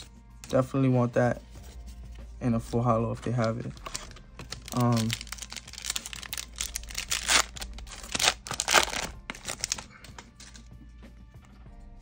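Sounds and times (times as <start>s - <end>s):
wrappers and cards rustling: 0.0s - 10.7s
faint music: 0.0s - 12.0s.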